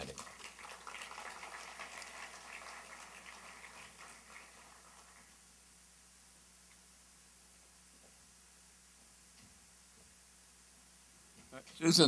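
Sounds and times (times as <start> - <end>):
faint audience applause: 0.0 - 5.5.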